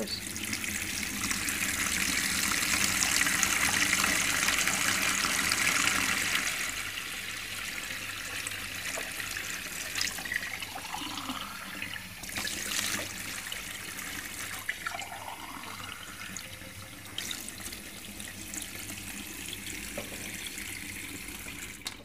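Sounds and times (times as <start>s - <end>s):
water tap running: 0.0s - 21.9s.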